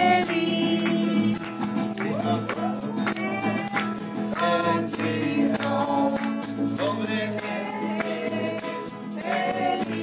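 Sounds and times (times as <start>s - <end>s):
group singing: 0.0s - 10.0s
strummed nylon-string guitar: 0.0s - 10.0s
tambourine shaken: 0.0s - 10.0s.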